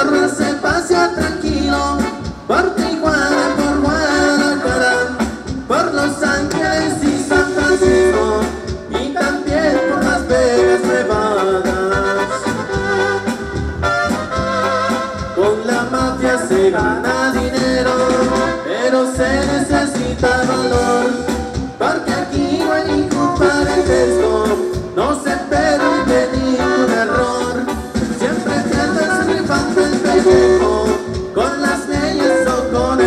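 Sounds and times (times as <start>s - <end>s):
person singing: 0.0s - 12.8s, 15.4s - 33.0s
live latin dance band: 0.0s - 33.0s.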